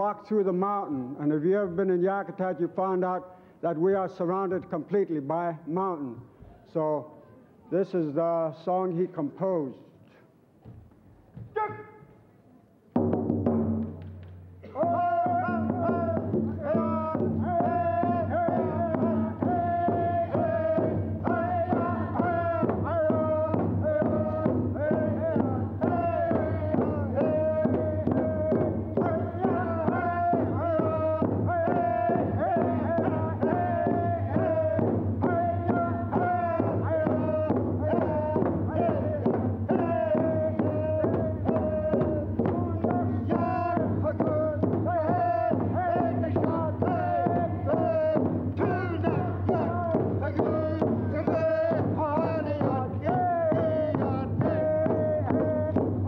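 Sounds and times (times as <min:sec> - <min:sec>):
group singing in unison: 0:14.6 - 0:56.0
frame drum beat: 0:14.7 - 0:56.0.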